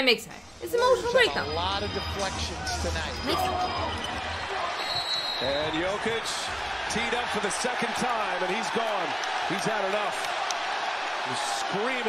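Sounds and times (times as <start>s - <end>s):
arena crowd noise: 0.0s - 12.0s
commentator speaking: 0.6s - 4.0s.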